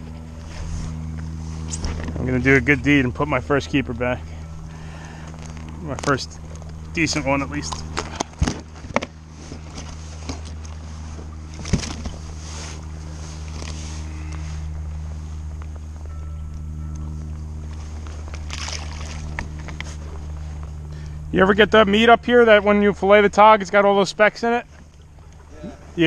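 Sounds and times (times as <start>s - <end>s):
motorboat engine droning: 0.0s - 26.0s.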